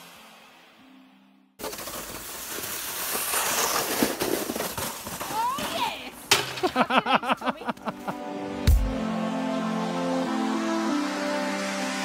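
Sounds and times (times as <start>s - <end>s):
plastic sled sliding over snow: 1.6s - 6.8s.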